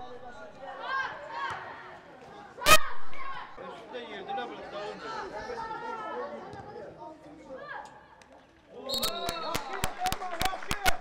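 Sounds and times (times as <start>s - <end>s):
voices calling out and chattering: 0.0s - 10.9s.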